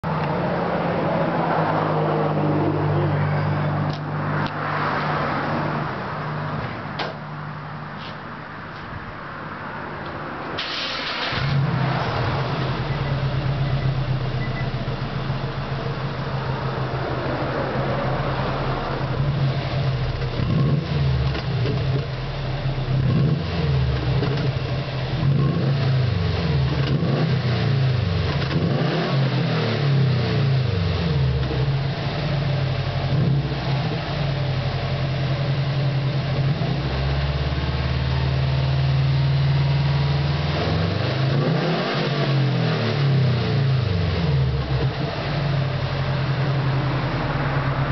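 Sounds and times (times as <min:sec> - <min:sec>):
loud car exhaust idling and revving: 0:00.0 - 0:47.9
car engine starting: 0:10.0 - 0:47.9.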